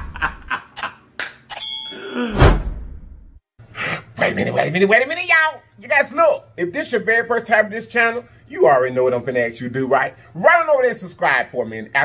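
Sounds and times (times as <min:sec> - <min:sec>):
bell-like ding: 0:01.5 - 0:02.3
swishes and sharp hits: 0:02.3 - 0:03.3.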